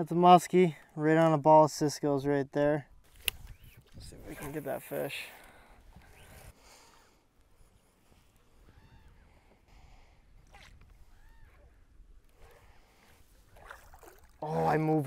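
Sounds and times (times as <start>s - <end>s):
wind rumble on microphone: 3.1s - 4.6s
water lapping around boat: 7.6s - 15.0s.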